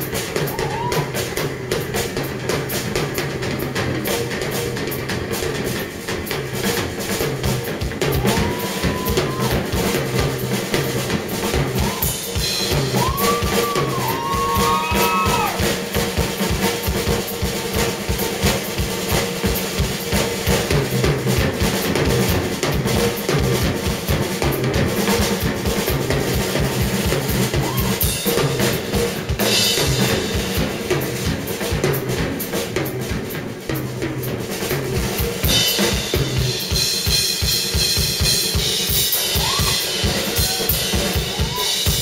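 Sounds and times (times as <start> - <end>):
rock drum solo: 0.0 - 42.0.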